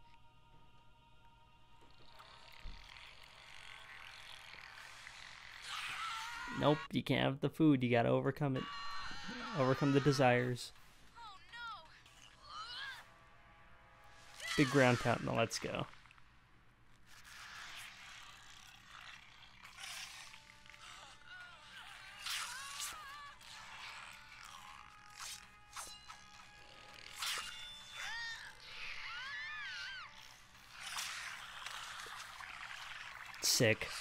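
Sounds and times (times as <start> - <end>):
cartoon background music: 8.4 - 15.9, 19.9 - 30.6.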